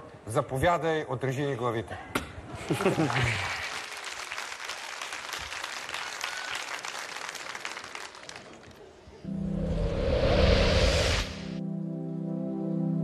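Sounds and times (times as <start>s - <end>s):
large audience applauding: 2.8s - 9.0s.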